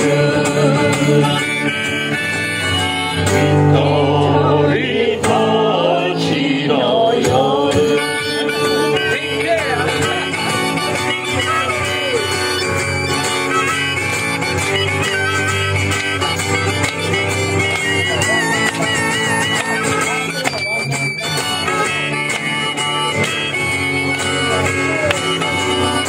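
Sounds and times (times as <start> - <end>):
harmonica playing: 0.0 - 6.6, 7.4 - 26.0
acoustic guitar strumming: 0.0 - 26.0.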